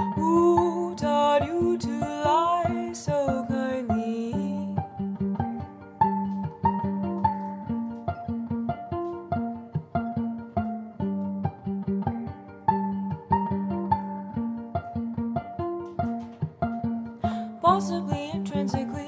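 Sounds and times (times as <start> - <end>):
violin plucked pizzicato: 0.0 - 19.0.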